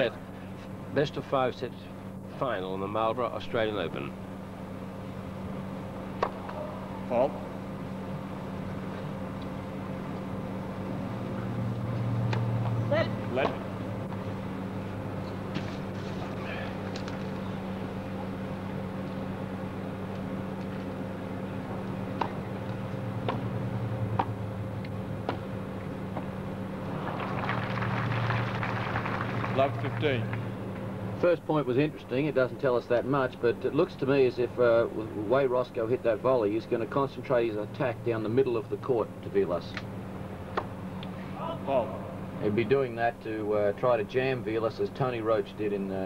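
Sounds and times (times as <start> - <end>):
steady hum: 0.0 - 46.0
person calling out: 12.9 - 13.2, 41.3 - 42.1
rackets striking tennis ball: 22.1 - 22.4
crowd applause: 26.9 - 30.4.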